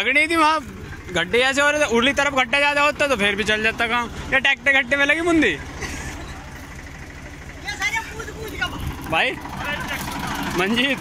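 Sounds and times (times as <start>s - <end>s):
diesel tractor engine idling: 0.0s - 11.0s.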